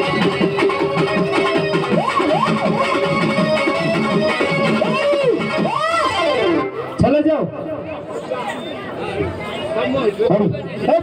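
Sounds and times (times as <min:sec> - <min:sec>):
electronic keyboard folk dance tune: 0:00.0 - 0:11.0.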